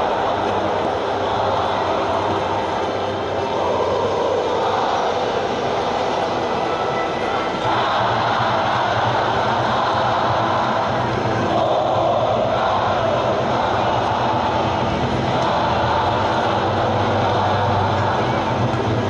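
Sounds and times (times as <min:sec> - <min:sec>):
stadium crowd cheering: 0:00.0 - 0:19.0.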